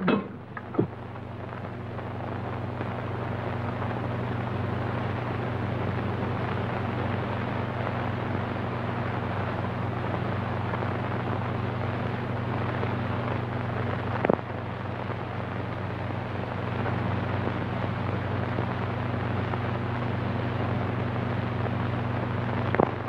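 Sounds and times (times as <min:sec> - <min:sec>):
low hum: 0:00.0 - 0:23.0.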